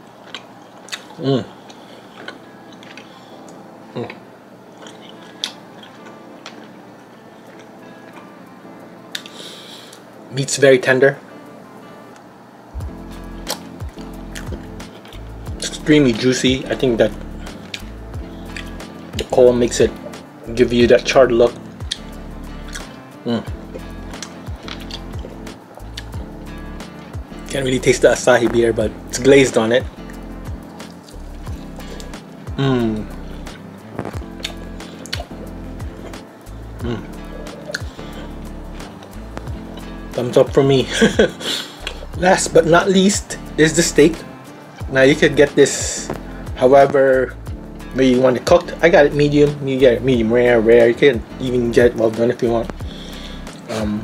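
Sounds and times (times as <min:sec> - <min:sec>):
person chewing: 0:00.2 - 0:03.6, 0:04.7 - 0:06.8, 0:07.4 - 0:08.3, 0:09.1 - 0:09.4, 0:13.0 - 0:15.3, 0:17.5 - 0:18.8, 0:21.8 - 0:26.2, 0:30.0 - 0:32.1, 0:33.1 - 0:40.1, 0:41.4 - 0:42.1
person murmuring: 0:01.2 - 0:01.6, 0:23.3 - 0:23.6, 0:36.8 - 0:37.2
soft mouth clicks: 0:09.1 - 0:10.0
low bass line: 0:12.8 - 0:44.2, 0:44.8 - 0:54.0.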